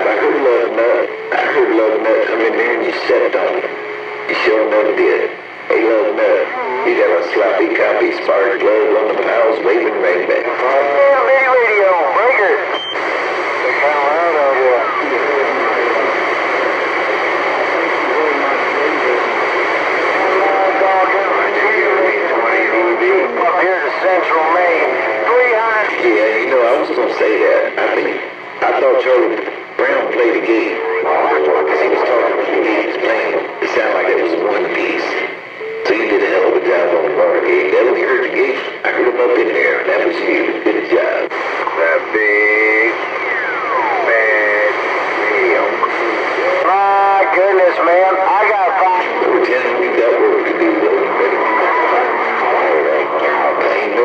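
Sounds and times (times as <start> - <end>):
radio static hiss: 0.0 - 54.0
radio voices: 0.0 - 54.0.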